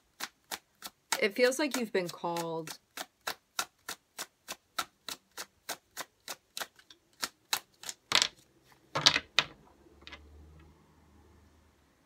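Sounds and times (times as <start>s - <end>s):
cards being shuffled: 5.1s - 9.5s.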